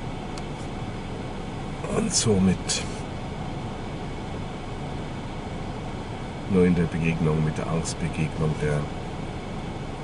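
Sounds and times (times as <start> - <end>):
car cabin hiss and rumble: 0.0 - 10.0.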